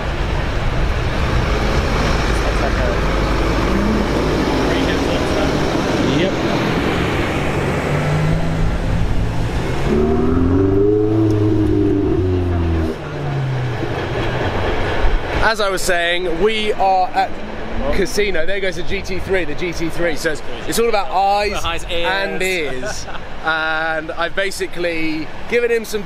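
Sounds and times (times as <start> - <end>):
bus engine and road noise: 0.0 - 26.0
sports car engine revving: 1.0 - 15.2.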